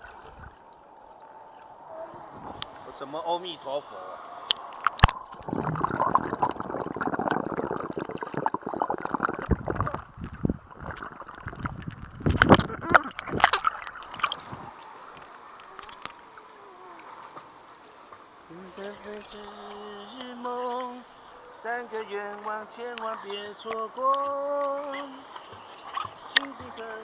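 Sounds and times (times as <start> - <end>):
water splashing: 0.0 - 27.0
muffled underwater gurgling: 4.0 - 15.8.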